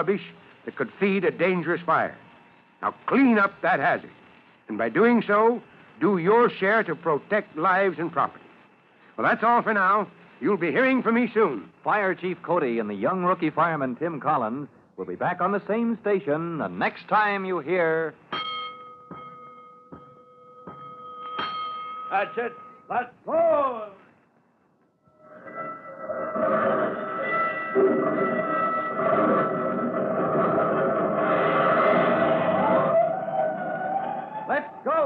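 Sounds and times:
alarm bell strikes: 0:18.3 - 0:22.9
closing music: 0:25.2 - 0:35.0
fire engine siren wailing: 0:26.9 - 0:35.0.

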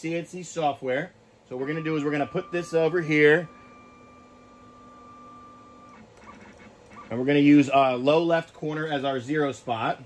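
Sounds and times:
stepper motors whining: 0:01.5 - 0:08.0.

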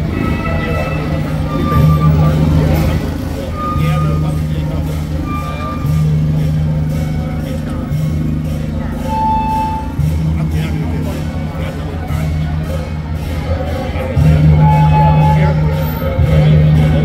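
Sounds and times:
crowd voices: 0:00.0 - 0:17.0
loud low hum: 0:00.0 - 0:17.0.

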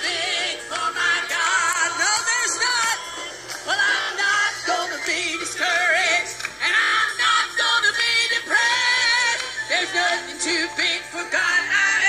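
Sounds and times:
gospel choir singing with music: 0:00.0 - 0:12.0.

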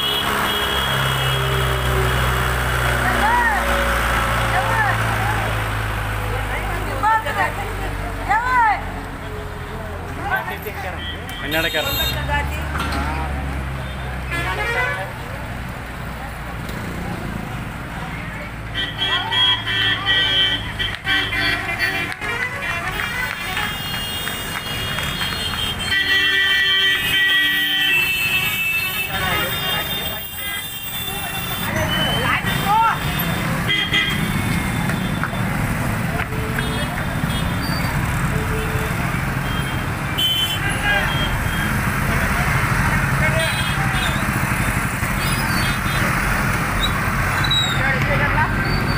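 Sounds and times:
vehicle horns: 0:00.0 - 0:02.4, 0:10.8 - 0:12.5, 0:13.7 - 0:15.4, 0:18.6 - 0:41.9, 0:43.1 - 0:47.9
tractor engine: 0:00.0 - 0:10.7, 0:12.3 - 0:48.9
motorcycles: 0:00.0 - 0:48.9
traffic engines running: 0:00.0 - 0:48.9
crowd voices: 0:01.4 - 0:23.8, 0:28.9 - 0:48.9.

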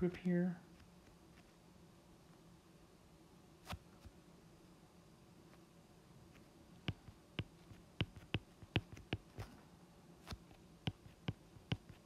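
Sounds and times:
stylus tapping on glass screen: 0:06.9 - 0:09.4, 0:10.9 - 0:12.0.

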